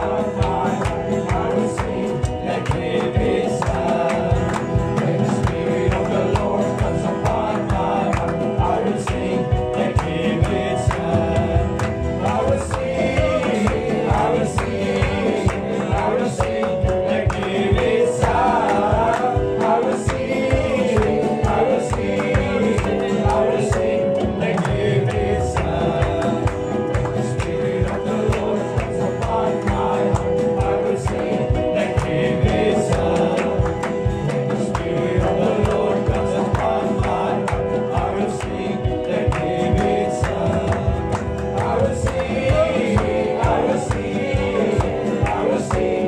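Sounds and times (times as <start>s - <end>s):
instrumental backing with steady beat: 0.0s - 46.0s
men singing gospel song: 0.0s - 46.0s.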